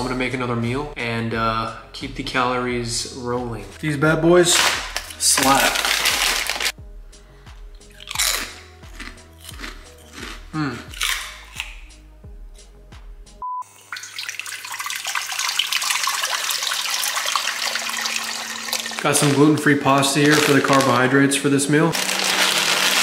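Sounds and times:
background music with bass sweeps: 0.0 - 13.4
brief beep: 13.4 - 13.7
tap water running: 13.6 - 20.8.

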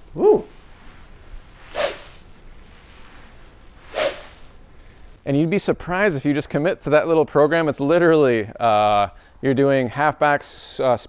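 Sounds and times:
training stick swing whoosh: 1.6 - 2.2, 3.8 - 4.5.

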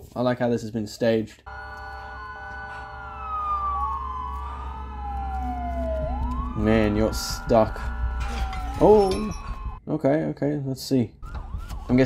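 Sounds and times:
low hum: 1.5 - 9.8
police sirens wailing: 1.5 - 9.8, 11.2 - 12.0
steady held tones: 1.5 - 9.8.

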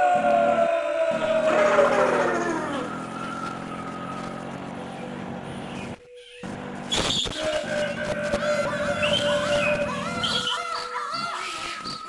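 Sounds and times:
street traffic: 0.2 - 12.0
vehicle engine running: 1.4 - 10.5.

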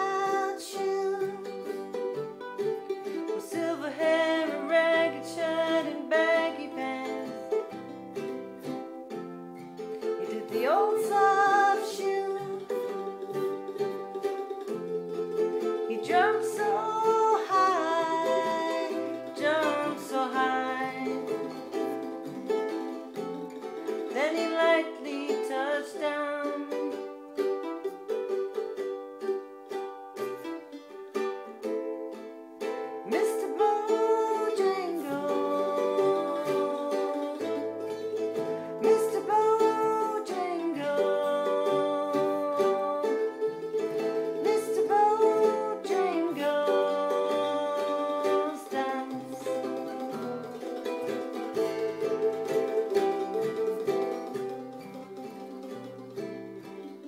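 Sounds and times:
plucked strings accompaniment: 0.0 - 57.0
sliding lead melody: 0.0 - 57.0.

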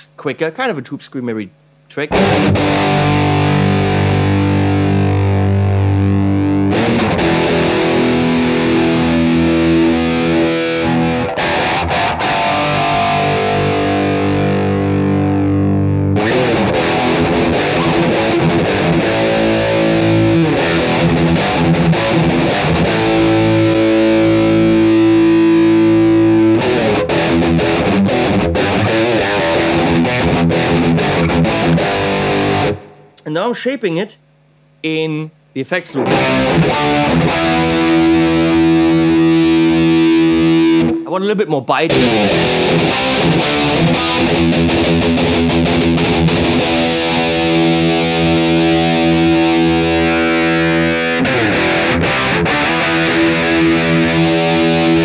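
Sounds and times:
overdriven electric guitar: 1.6 - 33.2, 35.9 - 41.1, 41.9 - 55.0.

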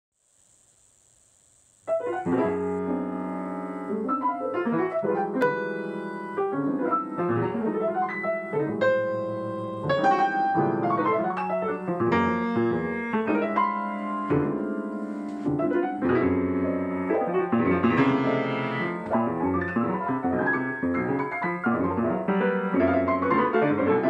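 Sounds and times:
grand piano playing: 1.9 - 24.0.

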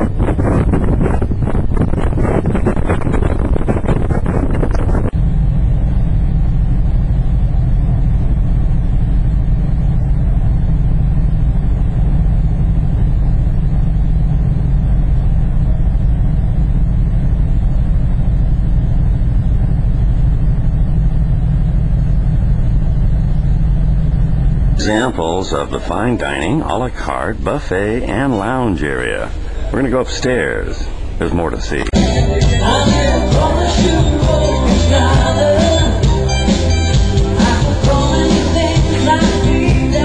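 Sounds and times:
wind buffeting microphone: 0.0 - 9.2
ship engines rumbling: 0.0 - 40.0.

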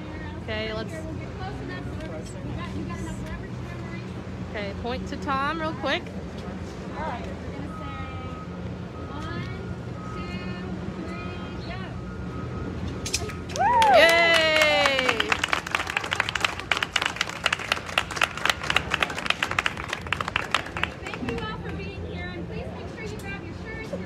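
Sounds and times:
loud whoop: 13.5 - 15.4
crowd cheering: 13.5 - 21.6
people clapping: 13.5 - 22.0.

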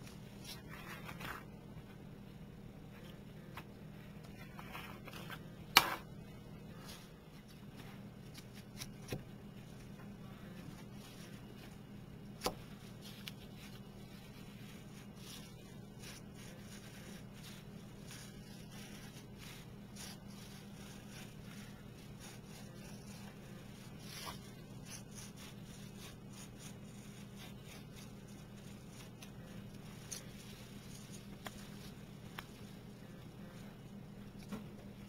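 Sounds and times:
blade scratching through stem: 13.0 - 32.6.

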